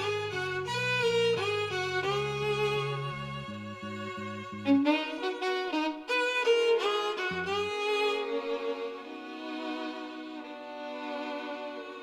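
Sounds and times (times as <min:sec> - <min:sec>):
low accompanying notes: 0:00.0 - 0:12.0
violin melody: 0:00.0 - 0:12.0.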